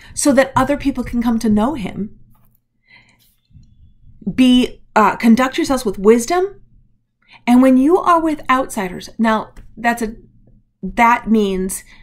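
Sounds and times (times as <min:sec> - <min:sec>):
soft breath: 0:02.8 - 0:04.2.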